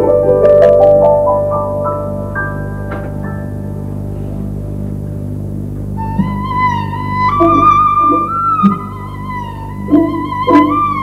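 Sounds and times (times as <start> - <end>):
orchestra strings sustained chord: 0.0 - 11.0.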